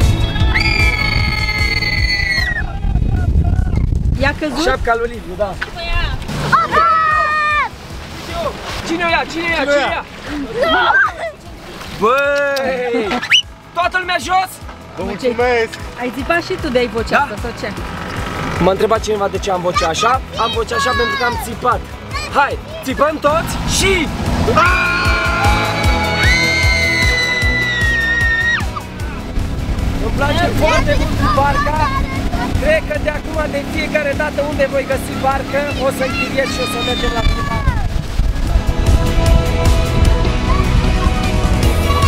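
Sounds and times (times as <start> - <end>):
people screaming: 0.1 - 3.8, 6.4 - 7.8, 24.4 - 29.3, 35.6 - 37.9, 40.2 - 42.0
excited voices exclaiming: 0.2 - 3.8, 6.4 - 7.8, 10.3 - 13.5, 19.7 - 29.3, 30.2 - 32.6, 34.9 - 38.0, 40.3 - 42.0
water splashing against boat: 4.3 - 42.0.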